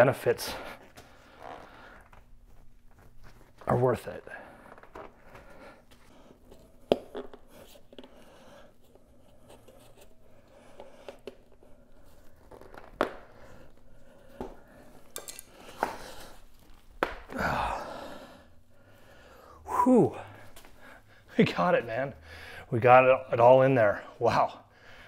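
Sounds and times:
person breathing strained: 17.3 - 21.4.

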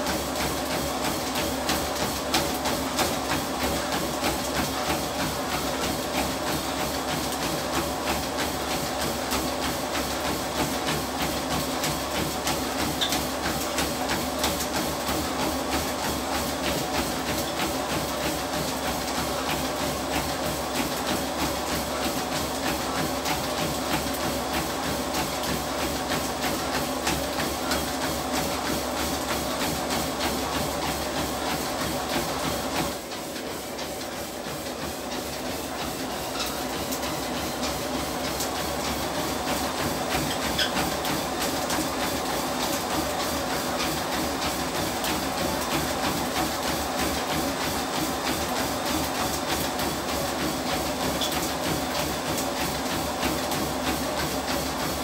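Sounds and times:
runner's footfalls on treadmill: 0.0 - 55.0
treadmill motor and belt hum: 0.0 - 55.0.

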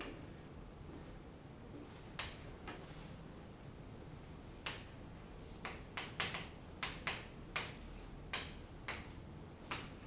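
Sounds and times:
chalk tapping on chalkboard: 2.1 - 2.9, 4.6 - 5.0, 5.6 - 10.0.

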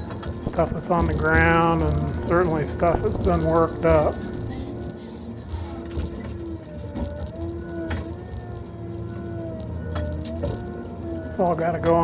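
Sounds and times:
hydraulic whine: 0.0 - 12.0
low engine drone: 0.0 - 12.0.

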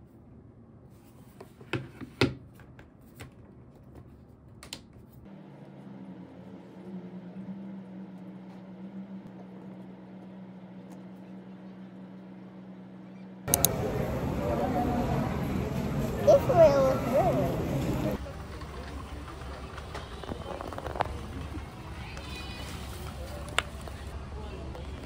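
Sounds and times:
low electrical hum: 3.0 - 18.2.

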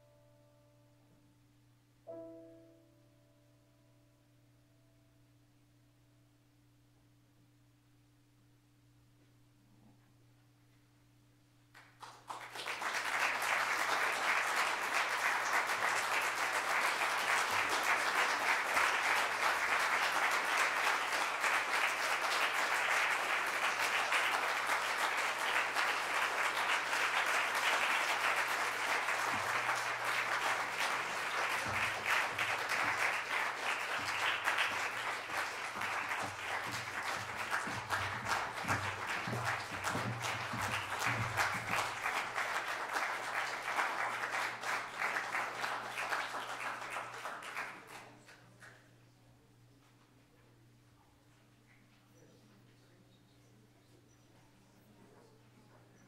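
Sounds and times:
audience applause: 11.8 - 48.2.

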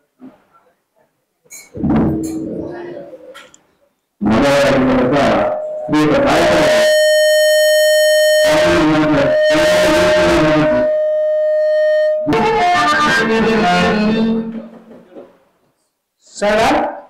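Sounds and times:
instrument holding high note: 1.8 - 3.3, 4.2 - 14.5
man singing amplified: 4.2 - 6.9.

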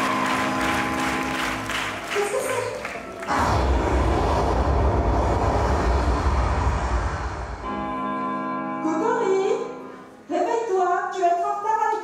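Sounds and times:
rumbling whoosh effect: 3.3 - 7.7.

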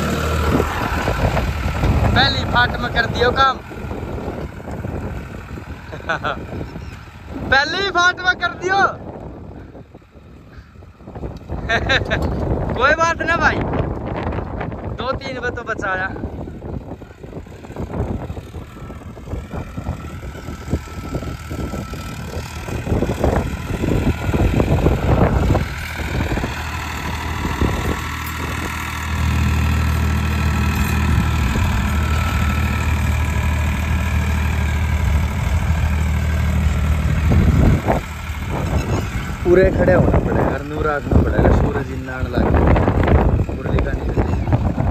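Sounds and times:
tractor diesel engine drone: 0.0 - 44.9.

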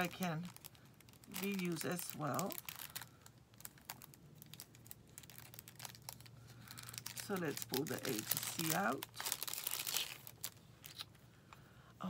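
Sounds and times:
plastic bag crinkling: 0.0 - 11.2.

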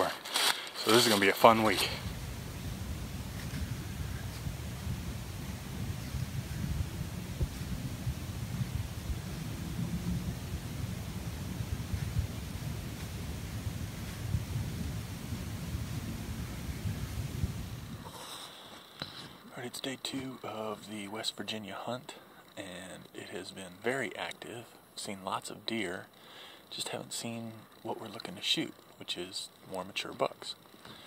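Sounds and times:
wind buffeting microphone: 1.6 - 18.1.

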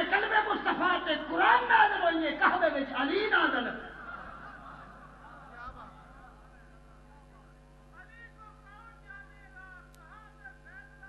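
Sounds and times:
man exclaiming over loudspeaker: 0.0 - 4.0.

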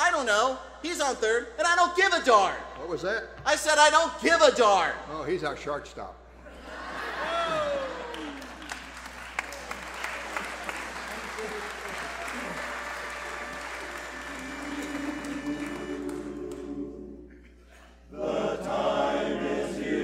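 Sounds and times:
audience applauding: 7.3 - 16.8.

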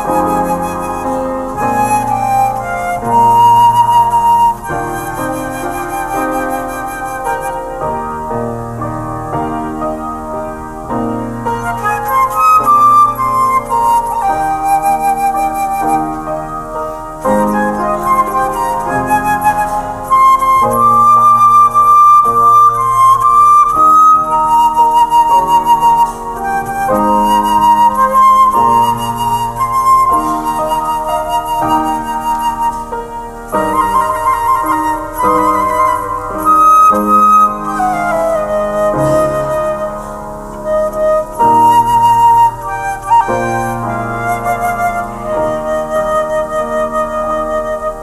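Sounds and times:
flute playing slow melody: 0.0 - 48.0
keyboard chords: 0.0 - 48.0.

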